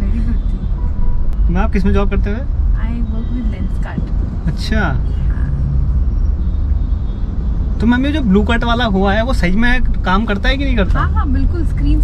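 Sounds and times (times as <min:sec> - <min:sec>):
car interior rumble: 0:00.0 - 0:12.0
man talking: 0:01.4 - 0:02.5, 0:04.5 - 0:05.1, 0:07.8 - 0:11.0.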